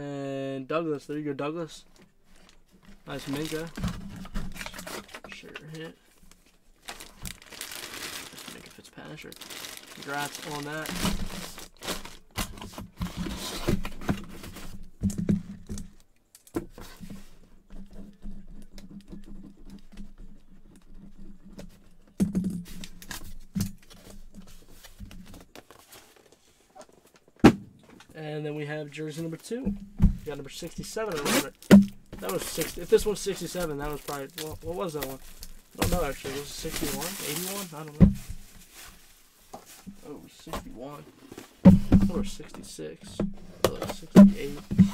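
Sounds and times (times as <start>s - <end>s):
cardboard box rustling: 2.3s - 14.9s, 29.8s - 42.6s, 43.3s - 44.9s
plastic packaging crinkling: 2.4s - 12.6s, 30.6s - 39.8s
person speaking a word: 10.0s - 11.0s.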